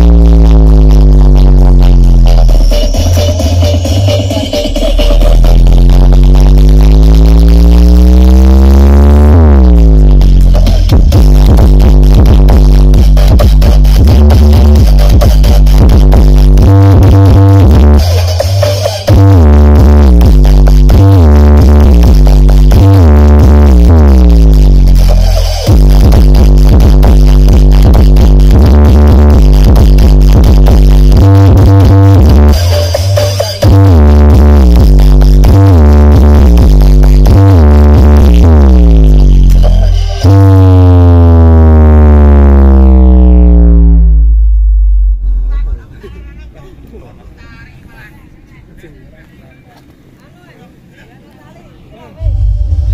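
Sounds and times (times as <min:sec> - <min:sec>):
falling bass sweeps: 0:00.0 - 0:18.2, 0:19.1 - 0:32.7, 0:33.6 - 0:45.8, 0:52.2 - 0:52.9
bass-heavy electronic dance music: 0:00.0 - 0:47.4, 0:52.1 - 0:52.9
outdoor background noise: 0:44.4 - 0:52.9.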